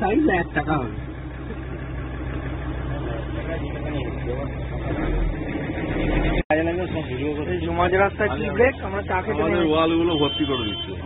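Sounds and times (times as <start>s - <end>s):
faint passenger chatter: 0.0s - 5.1s
minibus engine droning: 0.0s - 11.0s.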